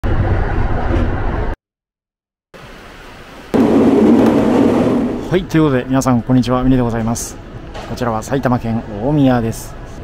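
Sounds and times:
train cabin running noise: 3.6s - 6.4s.

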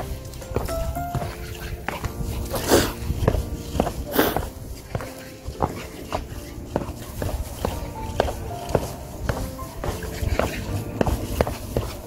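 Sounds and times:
footsteps on wooden steps: 0.0s - 12.0s
soft background music: 0.0s - 12.0s.

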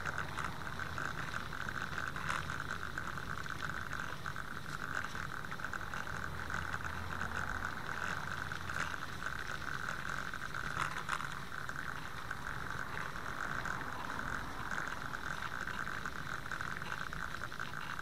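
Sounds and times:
bicycle whirring and rattling: 0.0s - 18.0s.

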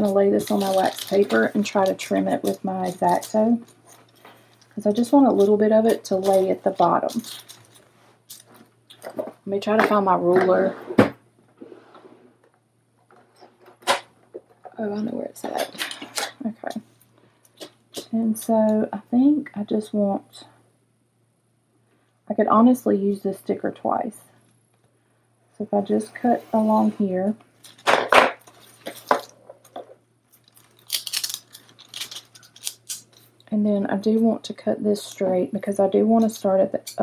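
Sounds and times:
wax paper crinkling: 0.0s - 9.3s, 30.4s - 33.4s
rustling and handling noises: 0.0s - 18.6s, 26.0s - 33.5s.

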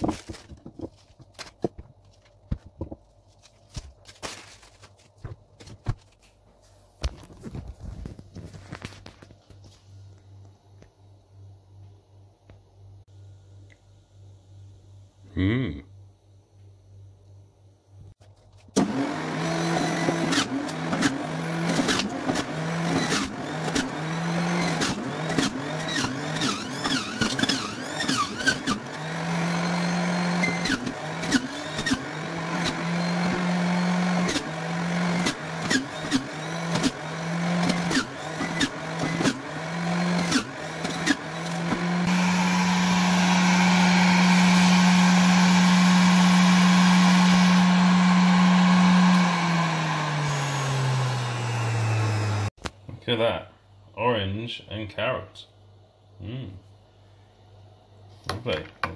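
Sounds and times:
electric juicer motor running: 18.8s - 52.5s
juicer winding down: 18.8s - 52.5s
vegetables crunching in juicer: 18.8s - 52.5s.

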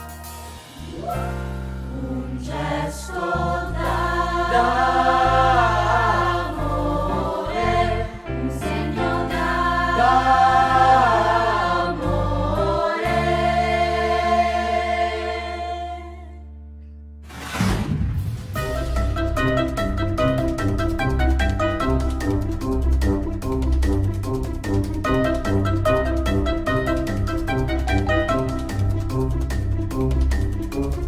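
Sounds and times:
instrumental backing with bass: 0.0s - 17.2s, 18.6s - 31.0s
choir singing a christmas song: 1.5s - 16.6s.

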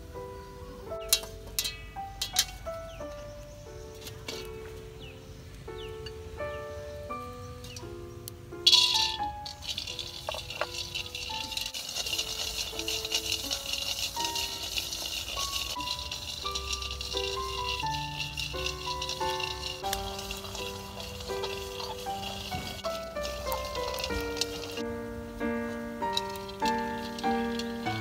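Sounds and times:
background music: 0.0s - 28.0s
peanuts sizzling in a wok: 0.7s - 6.0s, 8.6s - 28.0s.

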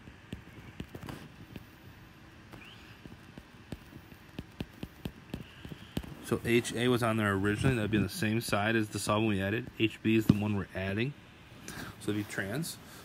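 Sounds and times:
faint steady hiss: 0.0s - 13.0s
stylus tapping on tablet screen: 2.5s - 6.2s.

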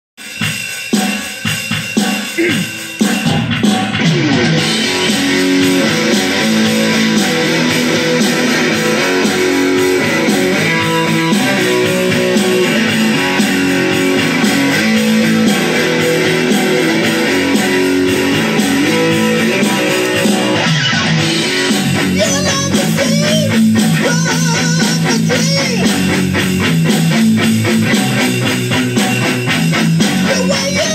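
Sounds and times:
electric guitar melody: 2.6s - 30.9s.

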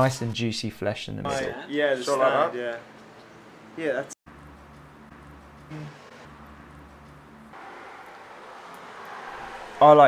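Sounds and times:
distant traffic hum: 2.8s - 10.0s.

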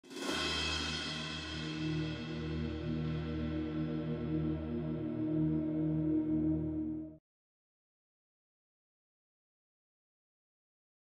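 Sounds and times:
low sustained chord: 0.3s - 7.2s.

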